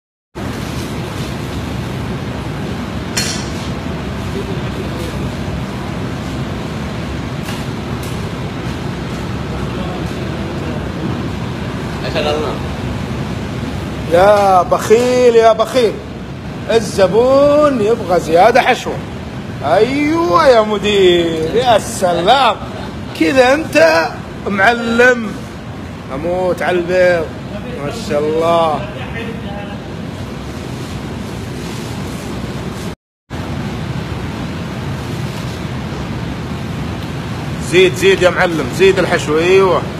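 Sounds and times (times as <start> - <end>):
kitchen background roar: 0.4 - 39.9.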